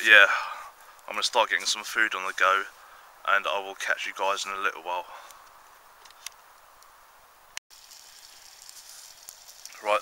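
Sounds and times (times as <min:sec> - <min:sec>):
wood fire crackling: 0:00.0 - 0:07.1, 0:07.7 - 0:10.0
sausages sizzling in oil: 0:07.7 - 0:10.0
sharp pops from fire: 0:07.7 - 0:10.0.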